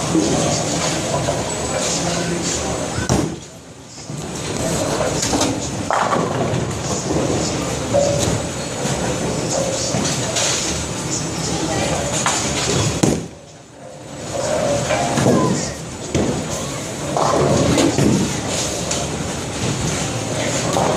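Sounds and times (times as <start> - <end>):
bowling balls rolling: 0.0 - 20.9
crowd chatter: 0.0 - 20.9.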